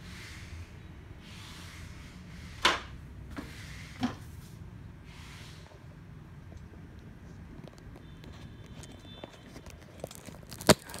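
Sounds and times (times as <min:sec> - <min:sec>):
phone being handled: 0:07.6 - 0:11.0.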